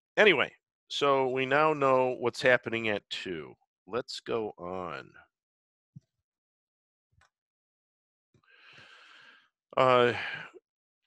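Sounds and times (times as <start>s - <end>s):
soft breath drawn in: 8.5s - 9.5s.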